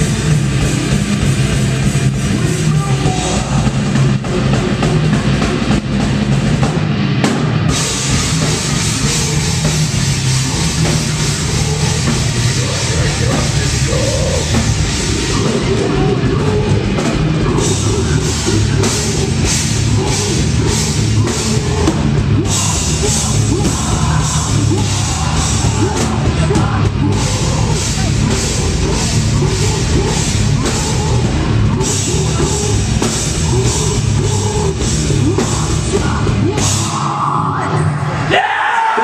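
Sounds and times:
metal band playing live: 0.0s - 39.0s.

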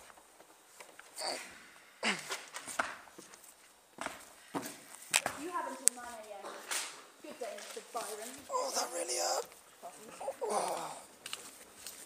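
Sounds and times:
footsteps on grass and leaves: 3.2s - 12.0s.

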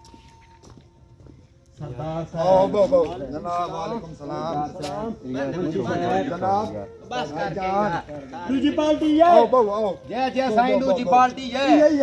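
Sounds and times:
footsteps on dirt path: 0.0s - 3.3s, 4.4s - 5.2s.

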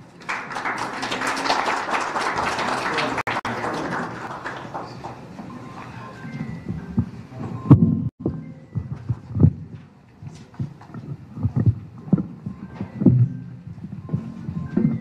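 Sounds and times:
audience applauding: 0.0s - 6.1s
microphone handling thumps: 6.6s - 15.0s.

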